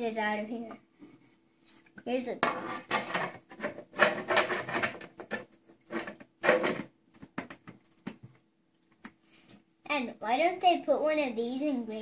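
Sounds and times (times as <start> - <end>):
plastic lid clattering: 2.4 - 7.6.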